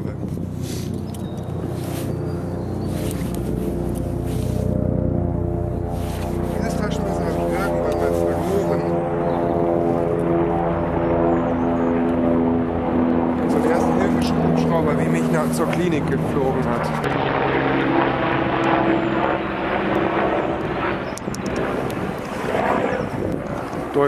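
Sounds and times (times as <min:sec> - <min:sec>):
steady engine drone: 0:00.0 - 0:24.0.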